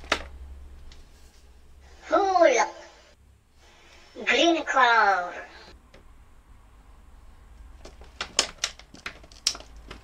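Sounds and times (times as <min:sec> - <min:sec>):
plastic packaging crackling: 0:07.8 - 0:10.0.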